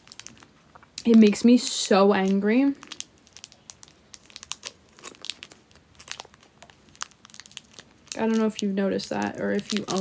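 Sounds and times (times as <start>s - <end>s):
candy wrapper crinkling: 0.0s - 10.0s.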